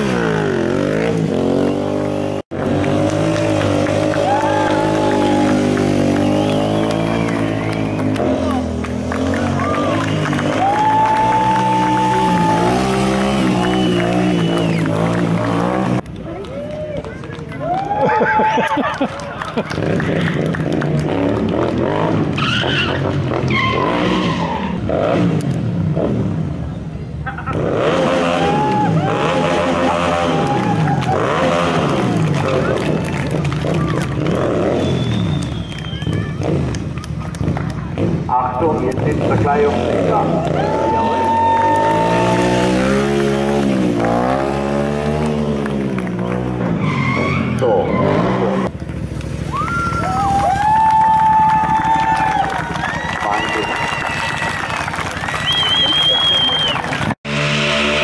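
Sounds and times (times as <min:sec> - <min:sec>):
motorcycle engine revving: 0:00.0 - 0:16.1, 0:19.6 - 0:50.4, 0:57.0 - 0:58.0
tyre squeal: 0:22.4 - 0:24.8, 0:46.7 - 0:48.5.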